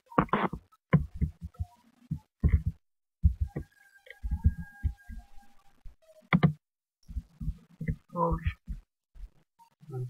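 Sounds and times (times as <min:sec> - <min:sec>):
muffled low thumps: 0:02.4 - 0:03.6.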